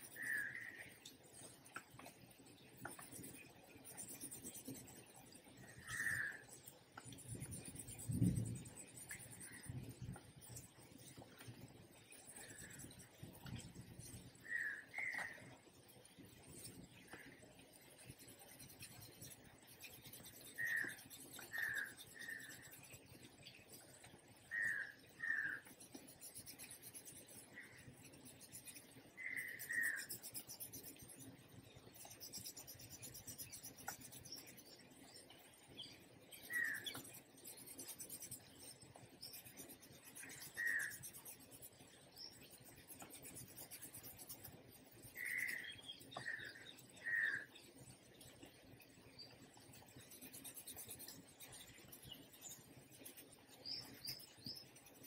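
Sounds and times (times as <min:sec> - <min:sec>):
pencil shading on paper: 0:01.4 - 0:14.4, 0:16.1 - 0:24.1, 0:24.7 - 0:35.2, 0:36.3 - 0:46.9, 0:49.5 - 0:55.0.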